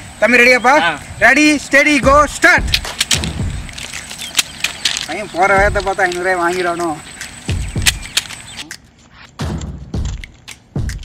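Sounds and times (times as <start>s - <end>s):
hands and feet slapping on paper: 2.0s - 9.3s
low scuffing: 2.1s - 9.4s.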